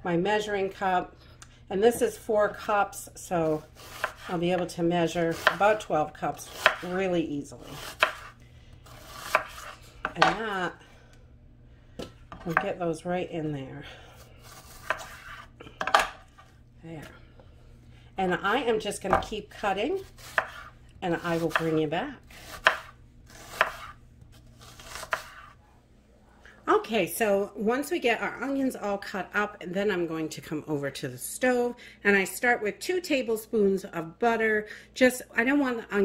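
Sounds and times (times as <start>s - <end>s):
knife rasping through onion: 3.5s - 4.4s, 6.4s - 7.0s, 7.6s - 9.8s, 14.4s - 15.5s, 20.0s - 25.6s.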